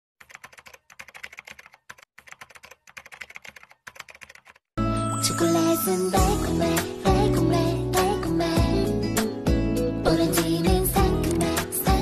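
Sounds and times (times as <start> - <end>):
keyboard typing clicks: 0.2 - 4.6.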